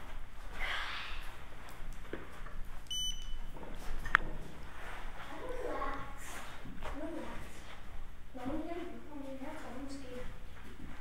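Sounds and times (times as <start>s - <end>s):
short high electronic beep: 2.9s - 3.3s.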